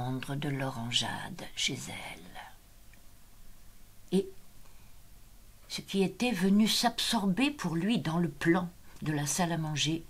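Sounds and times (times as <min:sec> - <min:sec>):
woman reading aloud: 0:00.0 - 0:02.6, 0:05.7 - 0:10.0.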